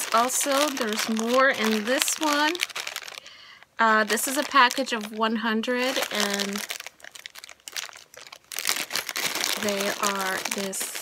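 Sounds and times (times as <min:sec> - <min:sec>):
plastic bag crinkling: 0:00.0 - 0:11.0.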